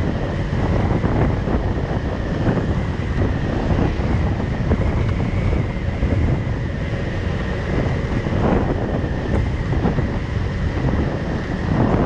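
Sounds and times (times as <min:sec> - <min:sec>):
road noise: 0:00.0 - 0:12.0
scooter engine running: 0:00.0 - 0:12.0
wind buffeting microphone: 0:00.0 - 0:12.0.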